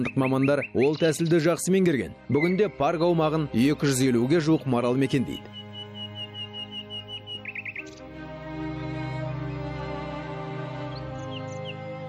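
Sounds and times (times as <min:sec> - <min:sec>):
songbird trilling and chirping: 0:00.0 - 0:01.6, 0:05.2 - 0:08.0, 0:10.9 - 0:11.8
soft background music: 0:00.0 - 0:12.0.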